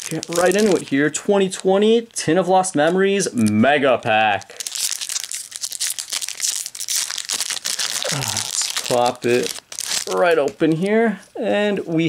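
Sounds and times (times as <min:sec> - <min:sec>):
foil wrapper being torn open: 0:00.0 - 0:01.0, 0:04.4 - 0:10.2
crinkling and crackling foil: 0:00.0 - 0:01.2, 0:02.8 - 0:10.8.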